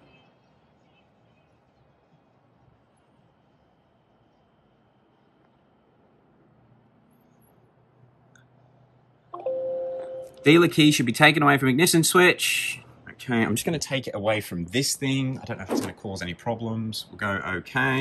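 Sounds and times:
computer alert chime: 0:09.4 - 0:10.6.

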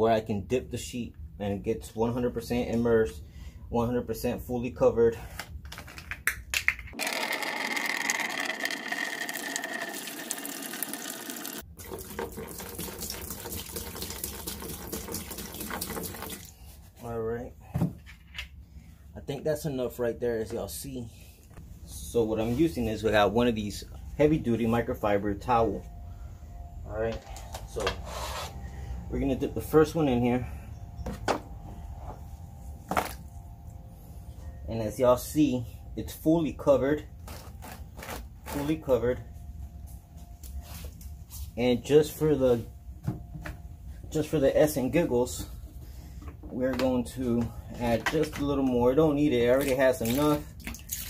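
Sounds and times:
liquid pouring and splashing: 0:07.2 - 0:16.5, 0:49.6 - 0:51.0.

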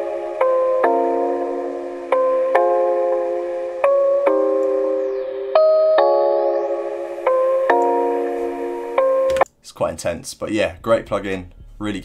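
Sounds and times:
bit-crushed keyboard chords: 0:00.0 - 0:09.5.

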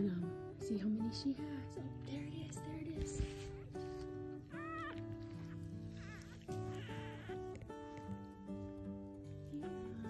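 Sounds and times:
background music: 0:00.0 - 0:10.0
puppies squeaking: 0:03.2 - 0:08.5.

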